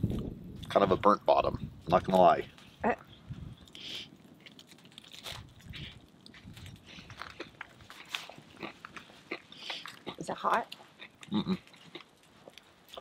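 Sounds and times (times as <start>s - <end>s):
crunchy chewing: 3.4s - 13.0s.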